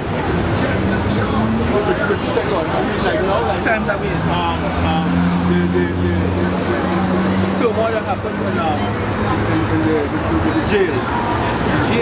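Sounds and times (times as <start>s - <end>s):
street voices: 0.0s - 12.0s
vehicle engine humming: 0.0s - 12.0s.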